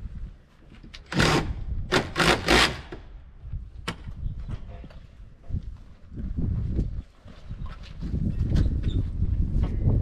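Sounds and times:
hand tool scraping wood: 1.1s - 3.0s.

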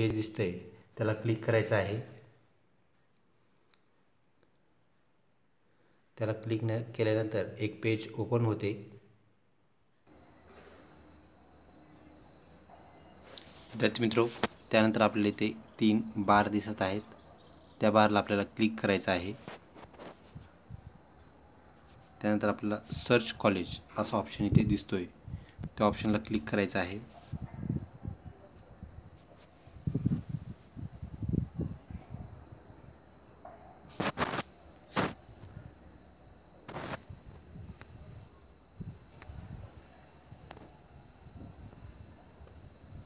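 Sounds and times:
low hiss: 0.0s - 40.8s
insect trilling: 10.1s - 43.0s.

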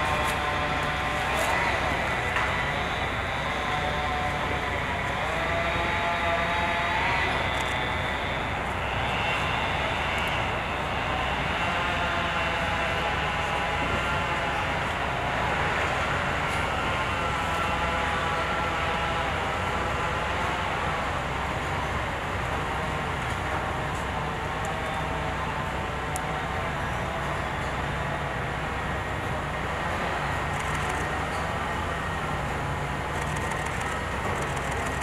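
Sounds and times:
electric locomotive whine: 0.0s - 35.0s.

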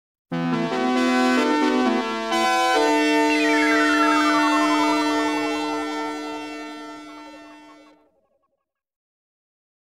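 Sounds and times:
synthesizer chord: 0.3s - 8.0s
pulsing synth tone gliding down: 2.7s - 7.9s.

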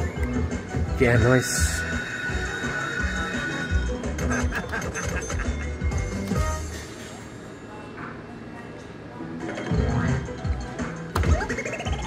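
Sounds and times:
slot machine music and effects: 0.0s - 7.3s, 9.4s - 12.0s.

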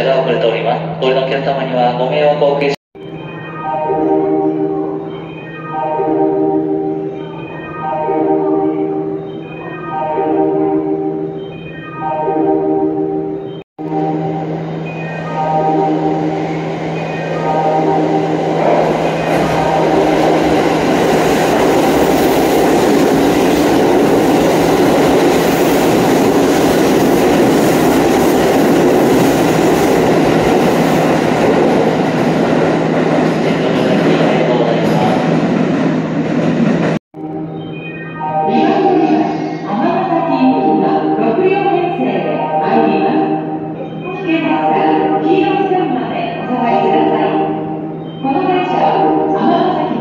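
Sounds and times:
melody notes: 3.0s - 23.2s, 37.2s - 50.0s.

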